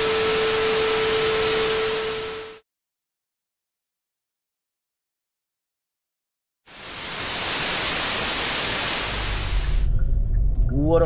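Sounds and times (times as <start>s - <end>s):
static white noise hiss: 0.0s - 2.6s, 6.7s - 9.9s.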